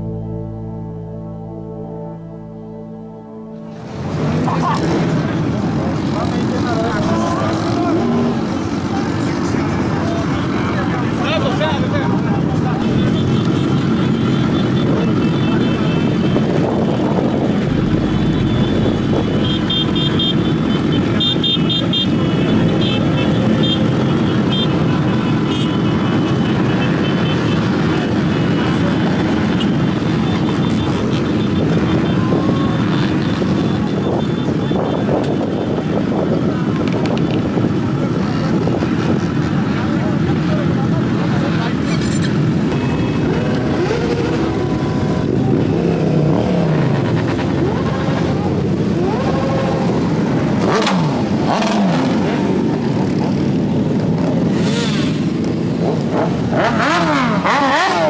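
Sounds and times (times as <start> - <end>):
crowd chatter: 3.7 - 54.4
motorcycle engines running: 3.7 - 58.0.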